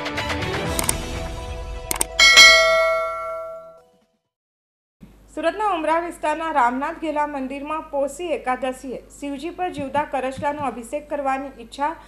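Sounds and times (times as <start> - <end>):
quick clicks: 0.8 - 1.0, 1.9 - 2.2
bright bell chime: 2.2 - 3.8.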